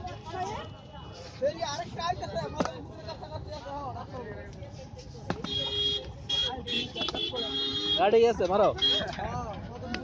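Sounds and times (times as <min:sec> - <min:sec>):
vehicle horn honking: 0:05.5 - 0:09.1.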